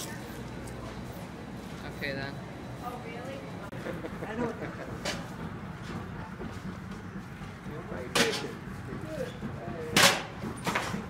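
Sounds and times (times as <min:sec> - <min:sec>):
background hubbub with voices: 0:00.0 - 0:11.0
sharp knocks: 0:09.9 - 0:11.0.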